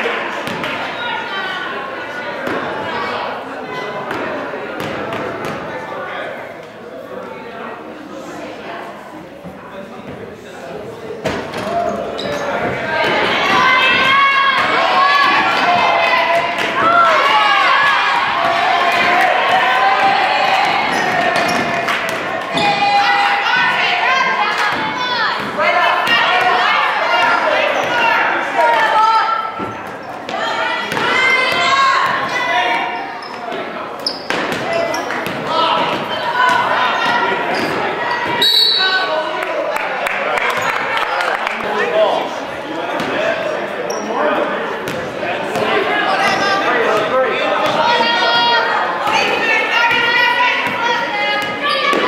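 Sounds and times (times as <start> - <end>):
sneakers squeaking on floor: 11.3 - 14.1, 20.8 - 21.8, 32.1 - 39.1, 43.8 - 45.1
people shouting: 12.8 - 29.4.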